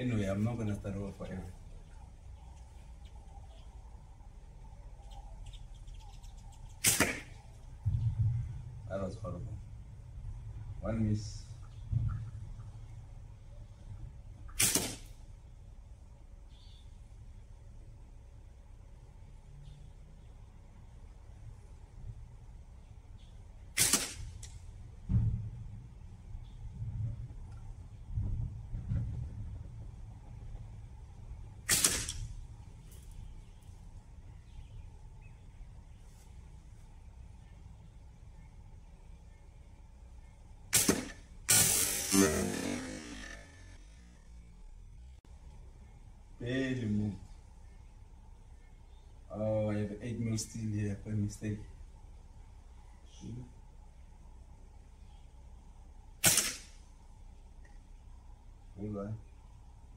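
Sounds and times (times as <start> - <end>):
shot ticking metal target: 6.8 - 7.4, 40.7 - 43.4
slingshot snap: 6.8 - 7.4, 14.5 - 15.2, 23.8 - 24.6, 31.7 - 32.3, 40.7 - 43.4, 56.2 - 56.8.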